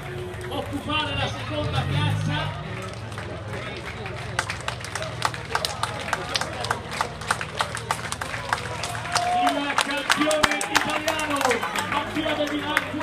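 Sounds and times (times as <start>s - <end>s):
spectators clapping: 0.0s - 1.1s, 2.1s - 13.0s
crowd voices: 0.0s - 13.0s.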